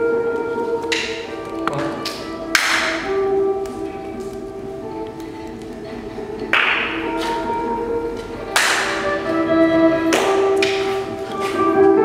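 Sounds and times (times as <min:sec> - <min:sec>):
steady held musical notes: 0:00.0 - 0:12.0.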